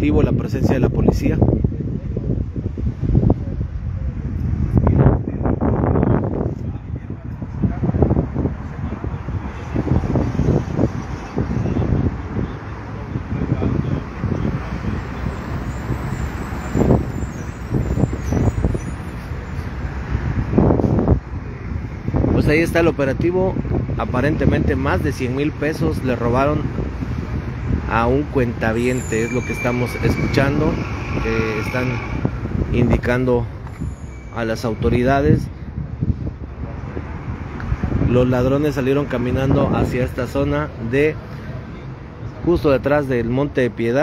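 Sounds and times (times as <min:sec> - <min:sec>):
street traffic rumble: 0:00.0 - 0:44.0
wind noise on microphone: 0:00.0 - 0:44.0.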